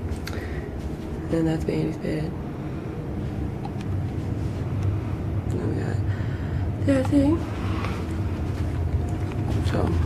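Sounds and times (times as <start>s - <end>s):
low engine rumble through hull: 0.0s - 10.0s.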